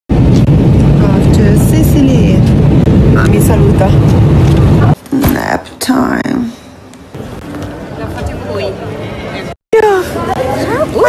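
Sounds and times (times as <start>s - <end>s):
airplane cabin rumble: 0.1s - 11.0s.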